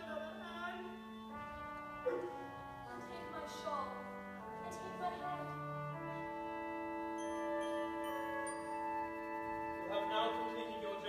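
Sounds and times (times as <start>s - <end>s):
instrumental music with held notes: 0.0s - 11.0s.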